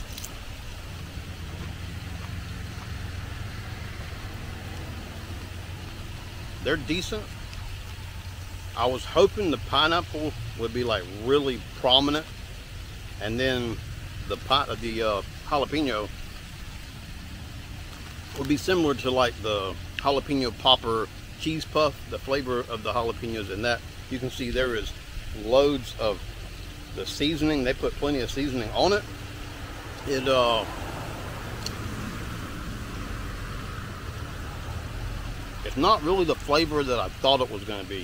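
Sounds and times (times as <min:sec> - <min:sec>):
engine idling hum: 0:00.0 - 0:38.0
faint hiss: 0:00.0 - 0:38.0.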